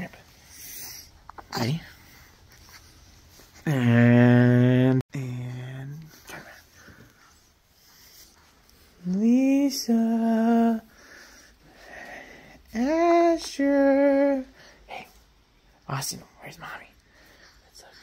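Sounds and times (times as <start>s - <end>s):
person calling in sing-song: 3.6s - 6.4s, 12.7s - 14.6s.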